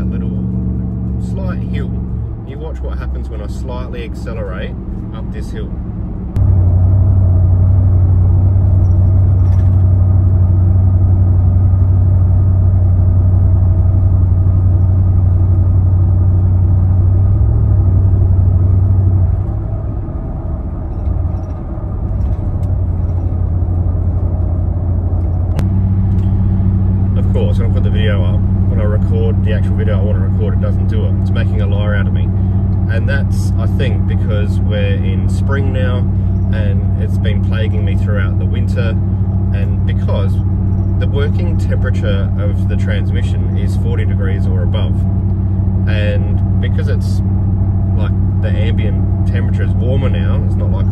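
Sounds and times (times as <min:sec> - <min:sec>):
car engine cabin drone: 0:00.0 - 0:50.9
higher hum: 0:05.8 - 0:50.9.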